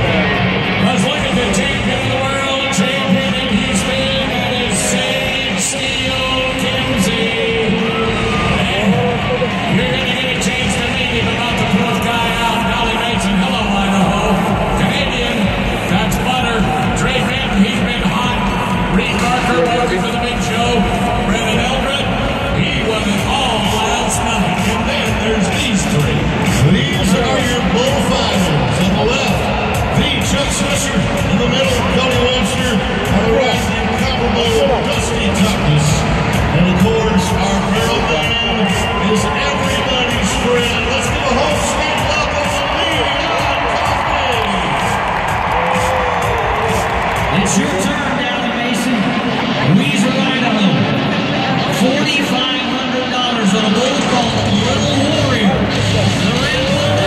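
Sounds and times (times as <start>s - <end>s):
amplified voice: 0.0s - 44.8s, 47.3s - 57.0s
crowd murmur: 0.0s - 57.0s
music over loudspeakers: 0.0s - 57.0s
crowd cheering and whooping: 6.7s - 12.9s, 26.3s - 50.6s.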